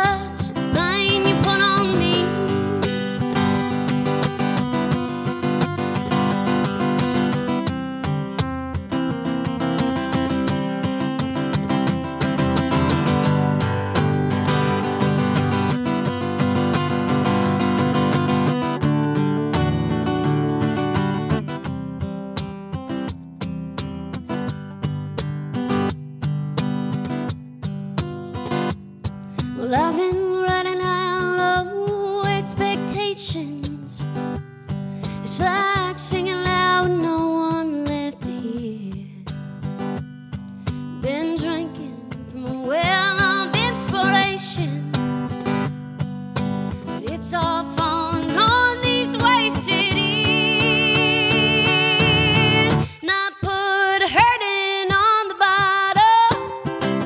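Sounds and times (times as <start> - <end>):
person singing: 0.0 - 2.9, 47.0 - 56.8
acoustic guitar strumming: 0.0 - 57.0.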